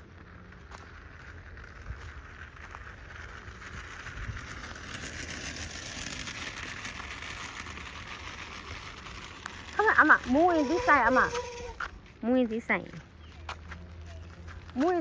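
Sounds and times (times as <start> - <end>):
bicycle rolling over asphalt: 0.0 - 15.0.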